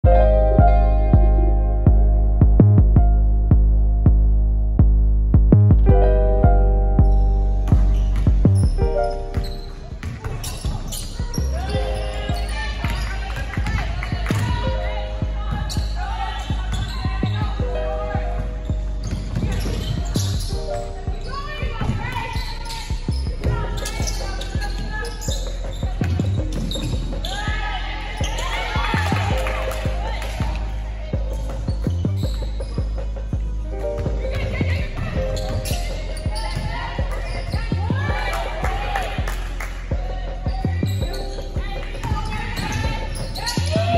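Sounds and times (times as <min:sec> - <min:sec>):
basketballs bouncing on hardwood: 0:07.0 - 0:20.7, 0:30.0 - 0:38.3.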